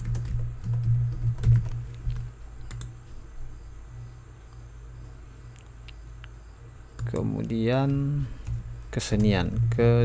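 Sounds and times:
computer keyboard typing: 0.0s - 3.0s, 8.4s - 9.8s.

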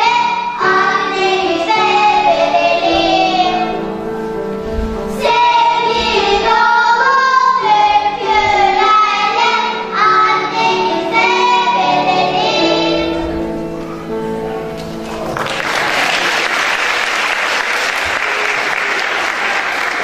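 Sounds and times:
children's choir singing: 0.0s - 15.3s.

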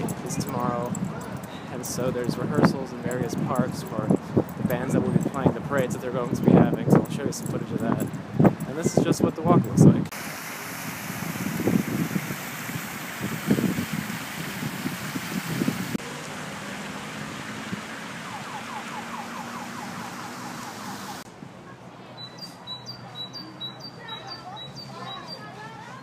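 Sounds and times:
street traffic: 0.0s - 10.4s, 11.6s - 26.0s
water splashing in fountain: 10.1s - 21.3s
small birds chirping: 22.2s - 26.0s.

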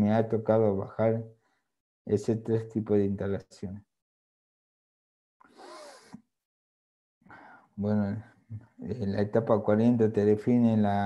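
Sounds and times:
intake of breath: 5.5s - 6.2s, 7.3s - 7.8s.

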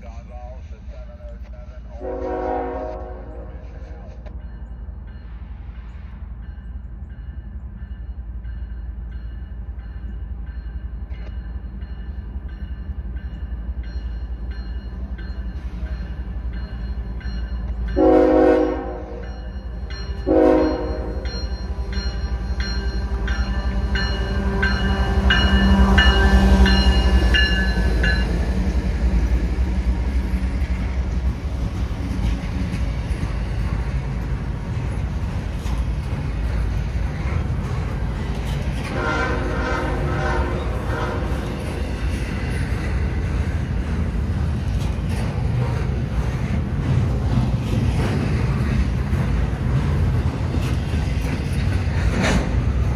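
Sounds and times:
diesel locomotive engines: 0.0s - 52.9s
rumble and clatter of train cars: 0.0s - 52.9s
train horn blasts: 2.0s - 3.6s, 18.0s - 19.4s, 20.2s - 21.4s, 38.8s - 41.6s.

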